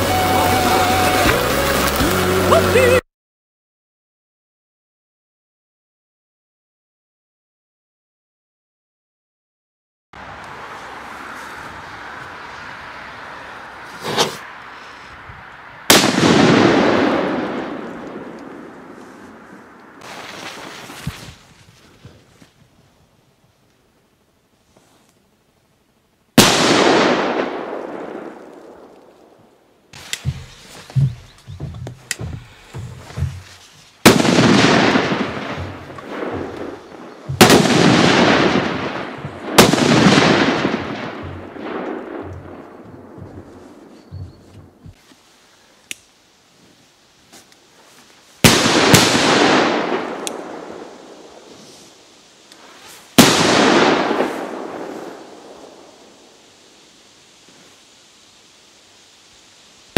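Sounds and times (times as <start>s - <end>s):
loud firework bangs: 15.9s - 19.0s, 26.4s - 28.9s, 34.0s - 44.4s, 48.4s - 51.5s, 53.1s - 56.2s
crackling pops: 26.4s - 45.1s, 45.8s - 46.2s, 48.5s - 55.9s.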